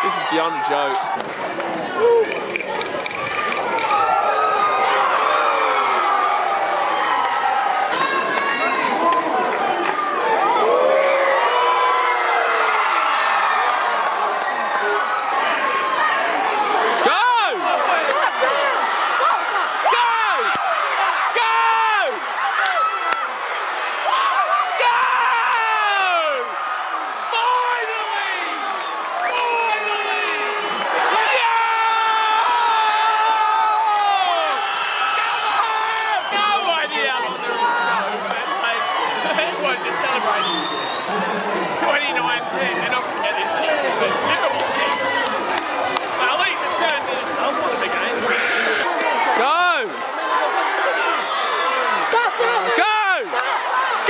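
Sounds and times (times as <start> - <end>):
stadium crowd shouting and cheering: 0.0 - 54.0.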